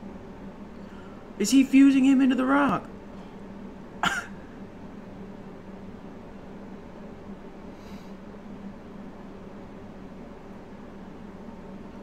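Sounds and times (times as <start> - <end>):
low room hum: 0.0 - 12.0
man coughing: 4.0 - 4.4.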